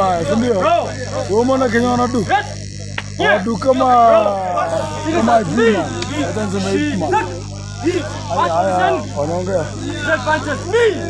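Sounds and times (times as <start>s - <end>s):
steady low hum: 0.0s - 11.0s
people shouting short calls: 2.2s - 11.0s.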